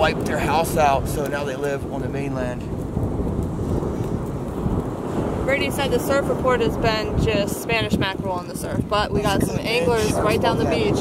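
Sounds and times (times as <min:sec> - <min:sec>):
wind blowing over microphone: 0:00.0 - 0:11.0.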